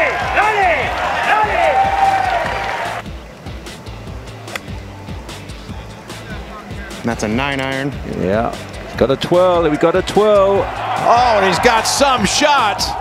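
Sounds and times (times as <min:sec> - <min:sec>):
crowd cheering and whistling: 0:00.0 - 0:03.0, 0:09.3 - 0:13.0
background music: 0:00.0 - 0:13.0.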